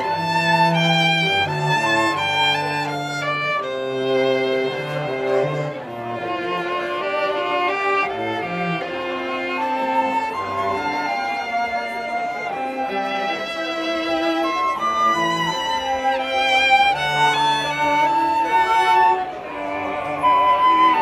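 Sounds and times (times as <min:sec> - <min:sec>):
cello holding low notes: 0:00.0 - 0:21.0
flute: 0:00.0 - 0:21.0
violin: 0:00.0 - 0:21.0.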